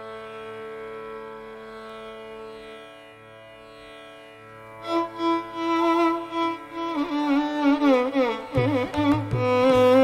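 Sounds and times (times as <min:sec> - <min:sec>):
violin holding long note: 0:04.8 - 0:10.0.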